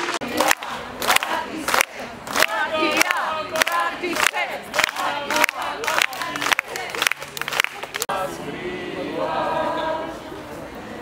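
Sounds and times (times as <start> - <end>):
crowd singing in unison: 0.0 - 11.0.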